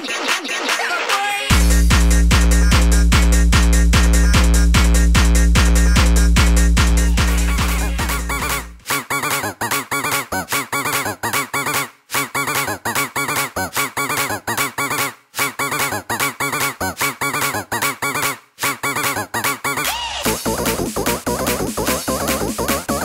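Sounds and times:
chopped synth lead: 0:01.5 - 0:09.5.

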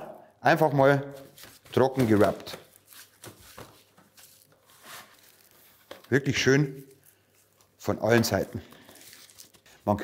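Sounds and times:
gloved hands rubbing meat: 0:01.3 - 0:05.9, 0:06.8 - 0:10.0.

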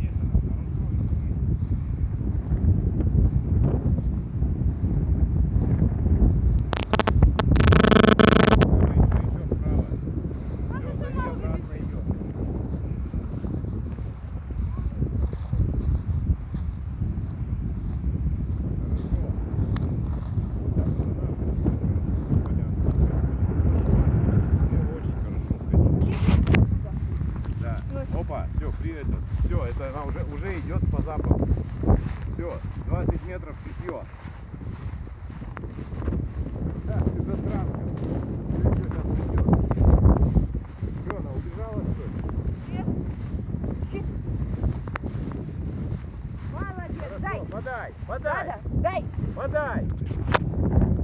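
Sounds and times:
wind buffeting microphone: 0:00.0 - 0:51.0
loud pitched sound: 0:06.7 - 0:08.6.

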